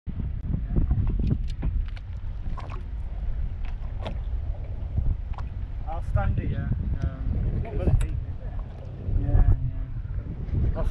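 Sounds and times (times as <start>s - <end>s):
wind buffeting microphone: 0.1s - 10.9s.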